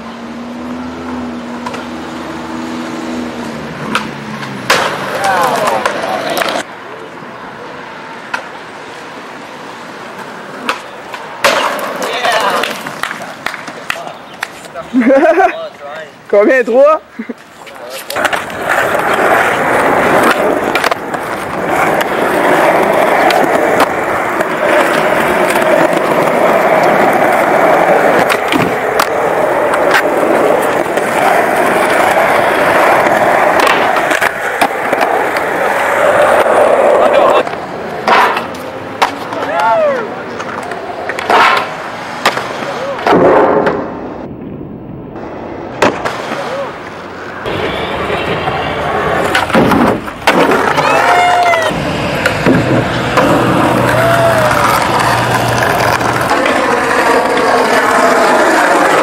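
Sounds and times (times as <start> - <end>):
skateboard wheels rolling on concrete: 0.0 - 59.0
skateboard clacking on ground: 3.8 - 6.7, 8.2 - 8.7, 10.0 - 44.5, 45.7 - 59.0.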